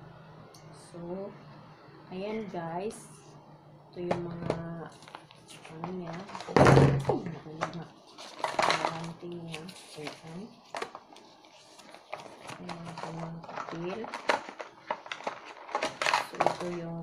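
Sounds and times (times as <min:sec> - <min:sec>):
paper rustling: 0:04.9 - 0:16.9.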